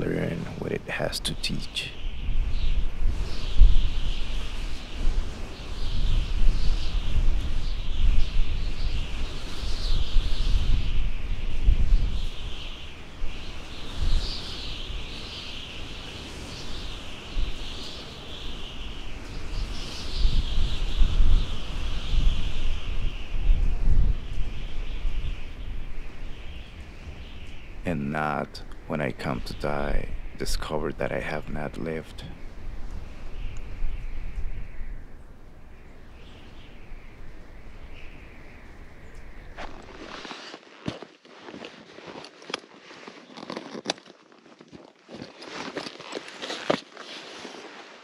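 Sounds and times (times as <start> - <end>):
birds chirping: 0.0 - 44.2
wind rumbling on microphone: 0.0 - 48.0.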